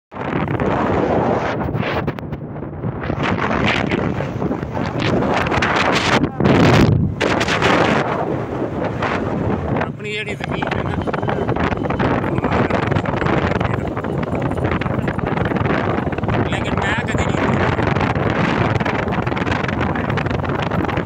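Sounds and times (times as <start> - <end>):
wind buffeting microphone: 0.1 - 21.0.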